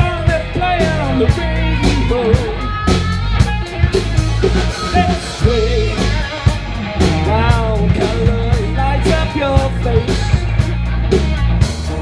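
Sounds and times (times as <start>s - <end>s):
bass guitar: 0.0s - 12.0s
drum kit: 0.0s - 12.0s
electric guitars: 0.0s - 12.0s
person singing: 0.0s - 12.0s.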